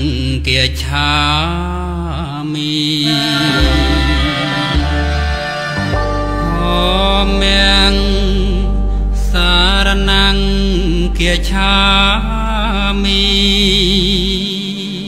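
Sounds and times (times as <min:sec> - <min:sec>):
person singing slow melody: 0:00.0 - 0:15.0
steady low bass note: 0:03.1 - 0:14.4.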